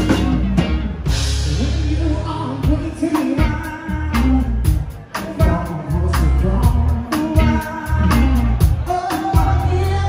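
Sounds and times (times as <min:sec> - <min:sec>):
live band playing: 0:00.0 - 0:10.0
person singing: 0:01.4 - 0:10.0.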